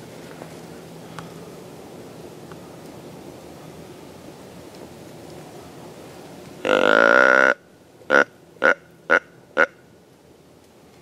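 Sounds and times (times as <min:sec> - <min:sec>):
deer grunt call: 0:06.6 - 0:09.7.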